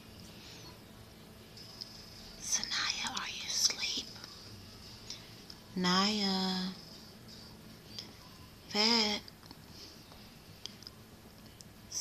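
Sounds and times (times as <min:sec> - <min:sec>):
person whispering: 0:02.4 - 0:04.3.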